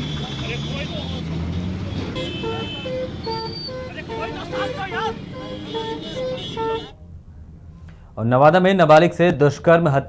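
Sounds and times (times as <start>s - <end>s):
vehicle horns beeping: 0.0s - 7.0s
crowd voices: 2.0s - 6.9s
people shouting: 2.2s - 6.9s.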